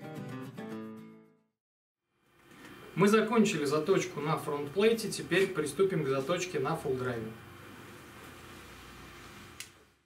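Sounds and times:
faint room hum: 0:02.1 - 0:10.0.

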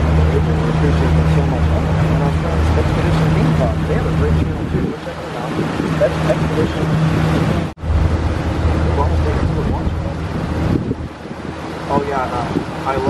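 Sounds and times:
boat motor humming: 0:00.0 - 0:13.0
wind buffeting microphone: 0:00.0 - 0:13.0.

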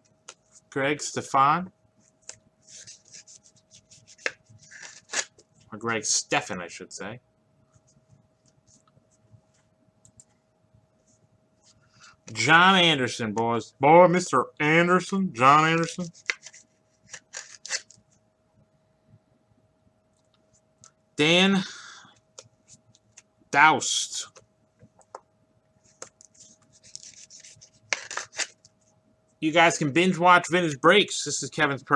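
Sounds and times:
card rubbing against plastic: 0:02.1 - 0:05.3, 0:15.8 - 0:18.0, 0:25.8 - 0:28.6.

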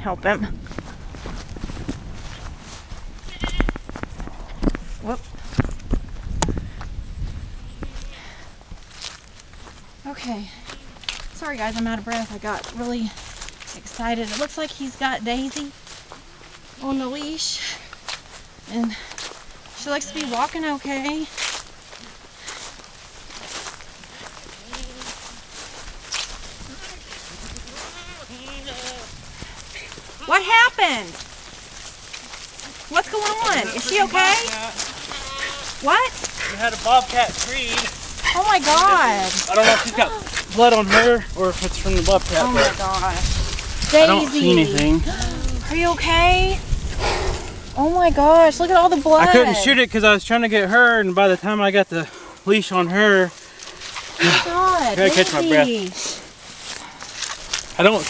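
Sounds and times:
wind rumble on microphone: 0:00.0 - 0:10.0, 0:25.8 - 0:30.2, 0:37.1 - 0:50.3
footsteps on dry ground: 0:00.0 - 0:58.0
goats bleating: 0:03.2 - 0:03.9, 0:24.5 - 0:25.4, 0:26.6 - 0:29.2, 0:33.1 - 0:41.4, 0:42.2 - 0:43.2.

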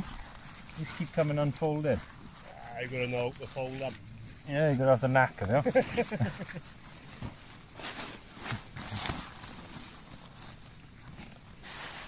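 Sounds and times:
rustling of tent nylon: 0:00.0 - 0:12.0.

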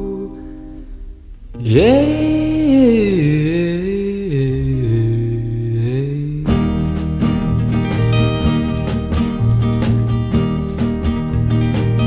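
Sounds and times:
low sustained tone: 0:00.0 - 0:06.0
strummed guitar chords: 0:00.0 - 0:12.0
wordless vocal line: 0:01.6 - 0:06.7.

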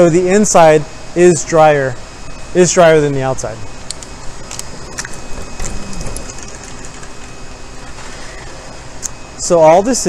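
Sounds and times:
dehumidifier whirring hum: 0:00.0 - 0:10.0.

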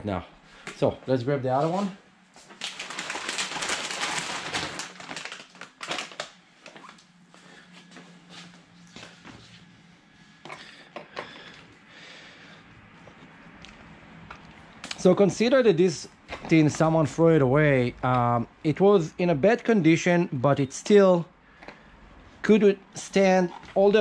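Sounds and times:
faint steady hum: 0:00.0 - 0:24.0
rustling and crinkling: 0:01.5 - 0:09.7.

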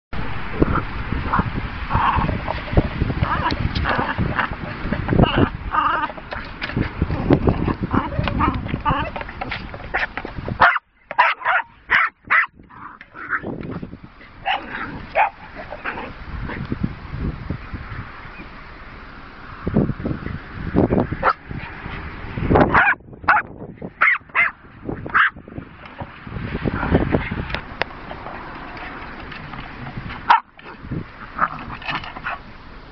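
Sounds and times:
dogs barking and yipping: 0:03.2 - 0:16.6, 0:21.1 - 0:32.5
dogs whining and yipping: 0:09.9 - 0:12.5.

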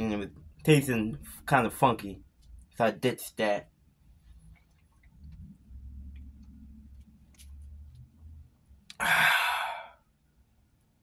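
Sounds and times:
man swallowing: 0:08.9 - 0:09.9
man sighing ahh: 0:08.9 - 0:10.0.

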